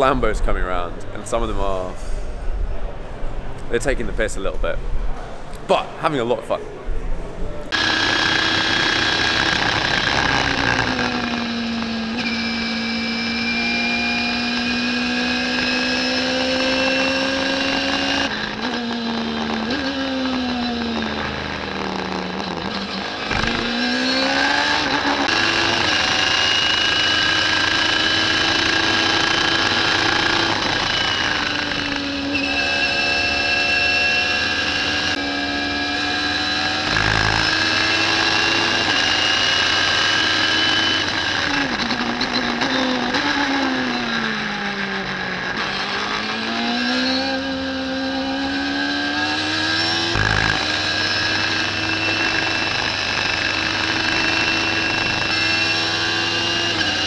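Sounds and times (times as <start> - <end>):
race car engine: 7.6 - 57.0.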